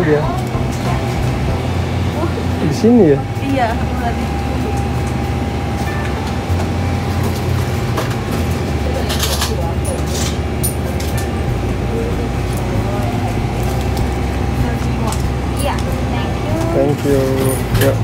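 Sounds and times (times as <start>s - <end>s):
low store background hum: 0.0s - 18.0s
soft voices: 8.4s - 18.0s.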